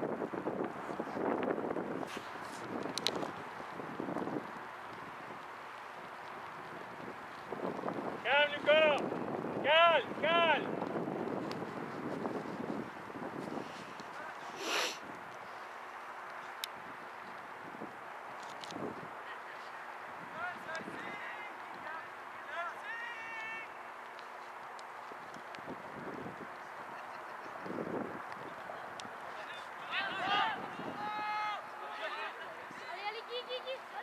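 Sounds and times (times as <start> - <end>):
wind on microphone: 0.0 - 15.8, 16.4 - 19.2, 24.6 - 29.4, 30.0 - 31.2
distant players' voices: 4.4 - 14.7, 19.0 - 34.0.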